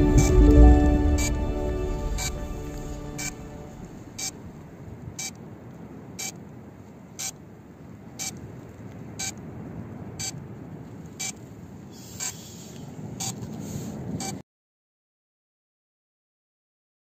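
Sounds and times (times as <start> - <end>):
drone beeping: 0.0 - 4.3
low background noise: 0.0 - 14.4.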